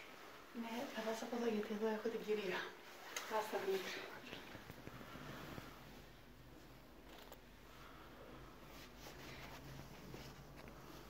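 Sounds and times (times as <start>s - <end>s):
faint rustling: 0.0s - 11.0s.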